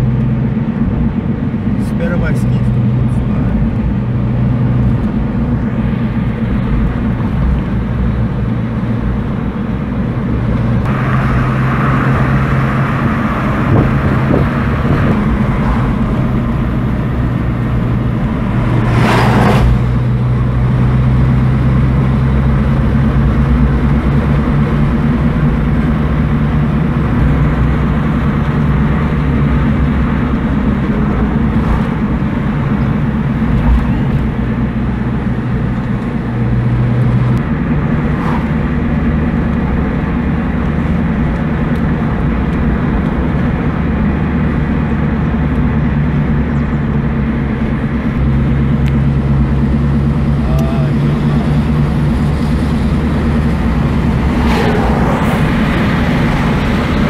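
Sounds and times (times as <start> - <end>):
car engine hum: 0.0 - 57.0
road noise inside car: 0.0 - 57.0
brief whoosh: 53.4 - 57.0.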